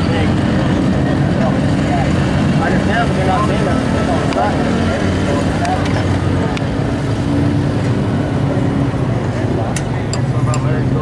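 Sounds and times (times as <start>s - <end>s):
engine running: 0.0s - 11.0s
people's voices: 0.0s - 11.0s.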